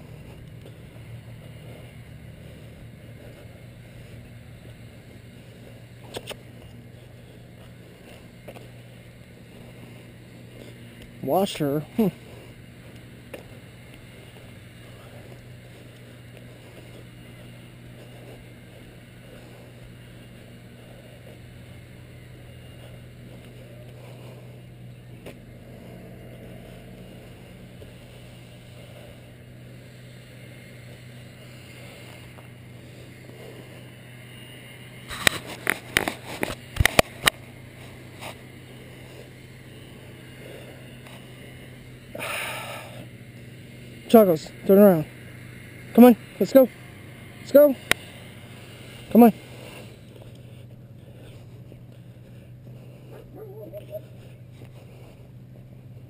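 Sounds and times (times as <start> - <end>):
low outdoor background hum: 0.0 - 56.0.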